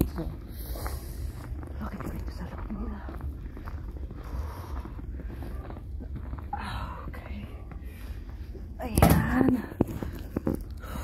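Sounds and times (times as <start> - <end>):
footsteps through snow: 0.0 - 8.6.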